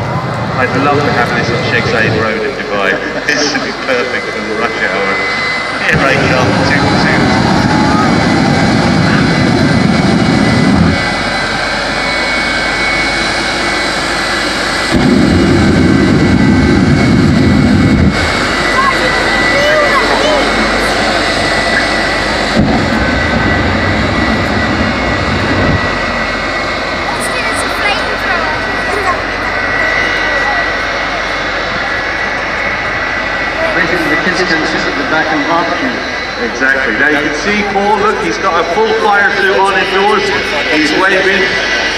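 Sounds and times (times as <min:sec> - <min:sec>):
jet engine whine: 0:00.0 - 0:41.9
afterburner blasts: 0:03.2 - 0:36.0.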